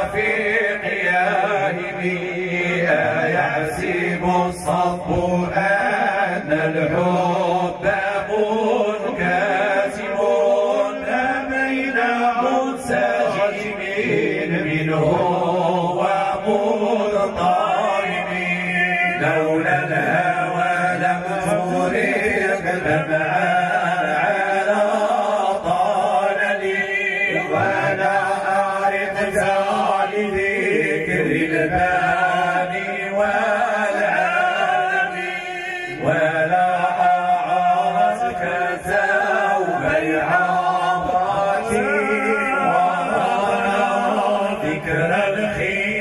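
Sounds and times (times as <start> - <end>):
men chanting into microphones: 0.0 - 46.0.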